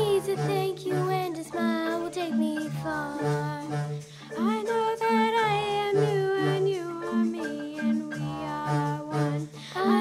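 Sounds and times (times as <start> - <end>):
children singing: 0.0 - 10.0
instrumental accompaniment: 0.0 - 10.0.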